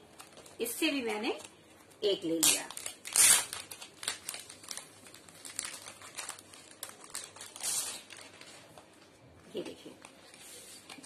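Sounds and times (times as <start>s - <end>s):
plastic packaging crinkling: 0.0s - 9.2s.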